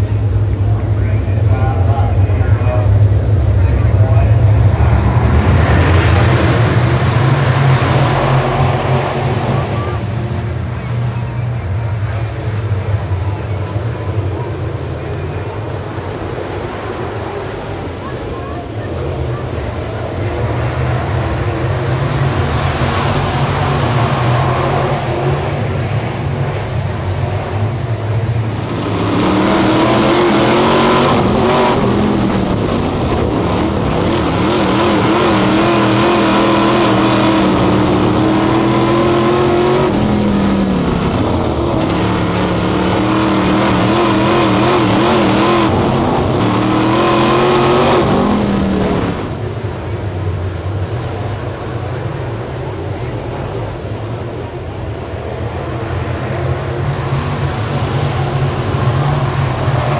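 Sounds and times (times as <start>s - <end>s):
race car engine revving: 0.0s - 59.9s
race cars on a dirt track: 0.0s - 59.9s.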